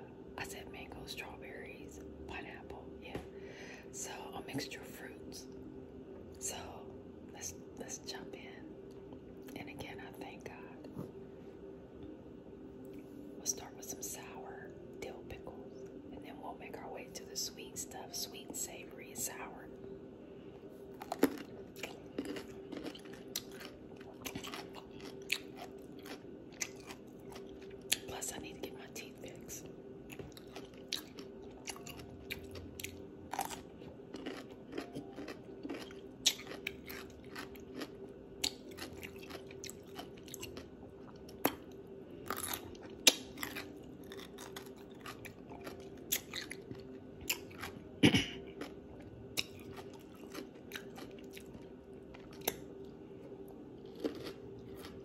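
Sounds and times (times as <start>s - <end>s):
steady low hum: 0.0s - 55.0s
crunchy chewing of pickles: 20.8s - 55.0s.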